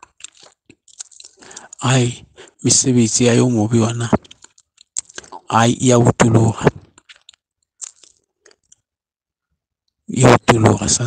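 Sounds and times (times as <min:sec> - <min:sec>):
faint clicks and smacks: 0:00.0 - 0:01.9, 0:03.8 - 0:09.1.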